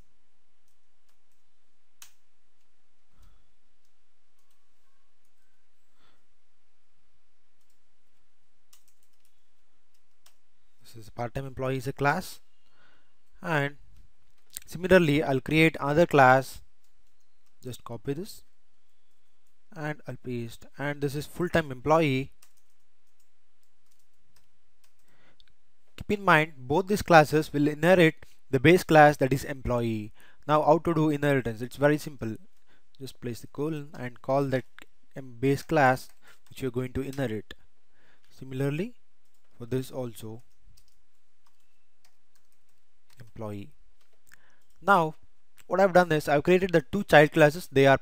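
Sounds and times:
faint steady hiss: 0.0s - 48.0s
keyboard keys typing: 2.0s - 5.5s, 7.6s - 10.4s, 16.8s - 17.7s, 22.3s - 25.1s, 40.4s - 43.4s
computer keyboard keystrokes: 8.7s - 9.3s.

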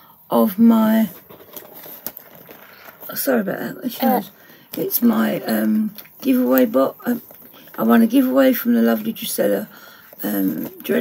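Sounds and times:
cardboard box rustling: 1.0s - 5.7s.

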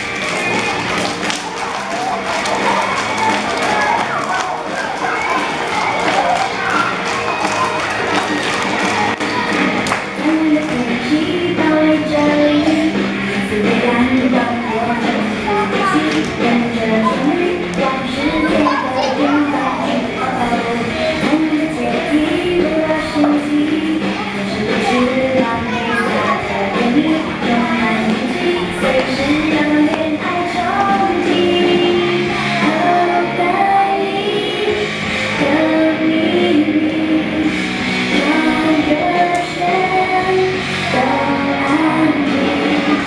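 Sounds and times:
children's exercise song: 0.0s - 43.0s
children's voices: 0.0s - 43.0s.

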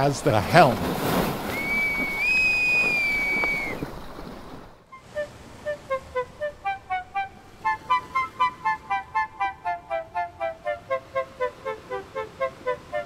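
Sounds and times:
bosun's pipe whistle: 1.5s - 3.9s, 4.9s - 13.0s.

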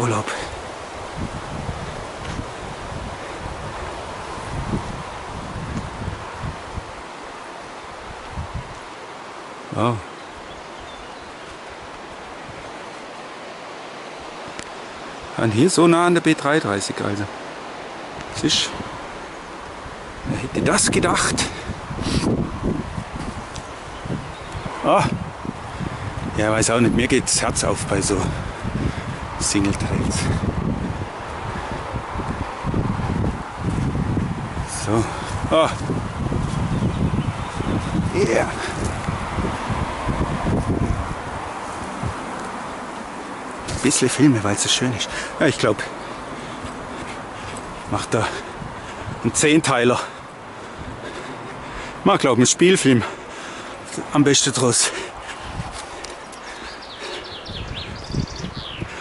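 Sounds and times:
wind buffeting microphone: 0.0s - 9.6s, 10.3s - 15.7s, 17.2s - 59.0s.

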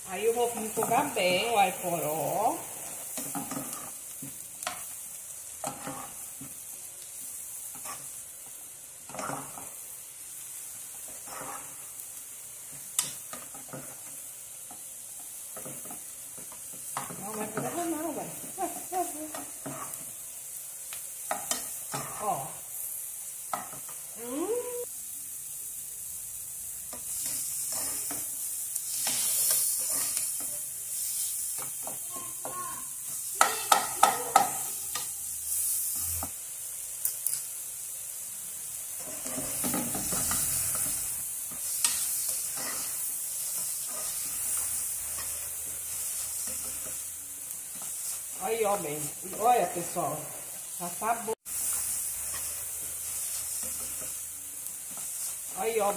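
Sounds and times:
leeks sizzling in a pan: 0.0s - 55.9s
wooden spoon scraping a pan: 0.2s - 5.0s, 5.6s - 9.9s, 10.6s - 12.0s, 12.6s - 20.3s, 21.2s - 22.6s, 26.9s - 36.3s, 38.9s - 50.8s, 51.5s - 55.9s.

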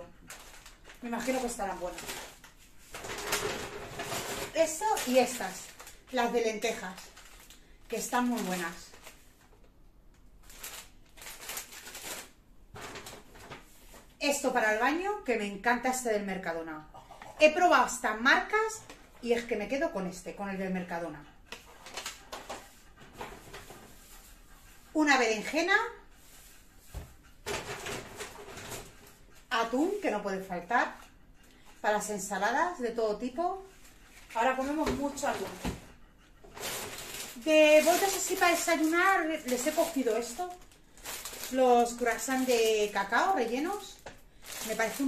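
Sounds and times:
plastic bag rustling: 0.0s - 9.5s, 10.4s - 14.0s, 36.4s - 45.0s.

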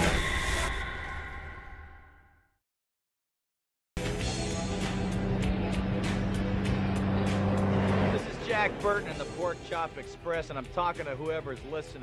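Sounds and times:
truck engine droning: 4.1s - 10.7s
man's voice: 8.1s - 12.0s.

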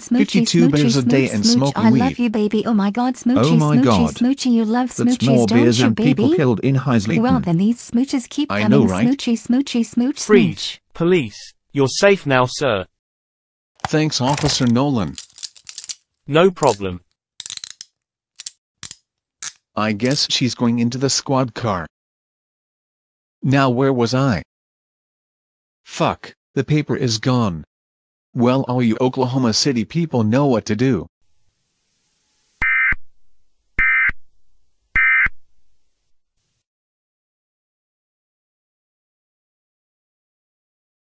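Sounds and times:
metallic rattling: 14.3s - 16.0s, 16.6s - 20.3s.

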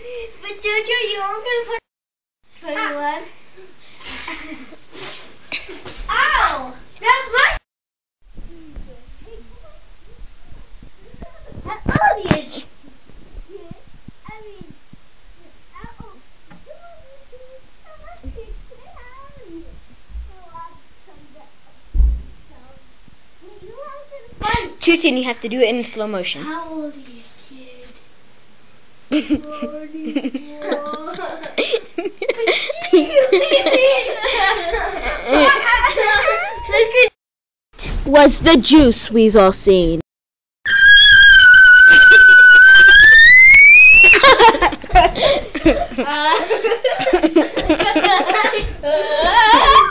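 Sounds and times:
low thumps on the floor: 21.9s - 22.4s
high wavering meow-like calls: 40.7s - 44.2s
girl screaming high-pitched: 40.7s - 44.4s.

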